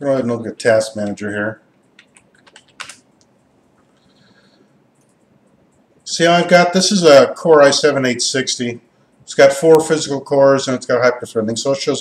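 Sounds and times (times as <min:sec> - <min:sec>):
typing on computer keyboard: 0:01.7 - 0:03.3.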